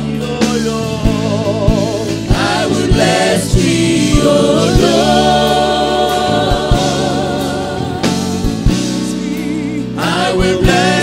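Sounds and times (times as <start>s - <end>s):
man singing into microphone: 0.0s - 2.3s
gospel band playing: 0.0s - 11.0s
drum hits: 1.7s - 9.2s.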